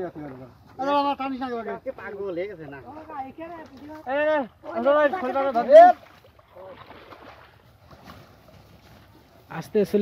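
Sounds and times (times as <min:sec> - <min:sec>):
muddy water sloshing in a tarp: 0:02.9 - 0:09.6.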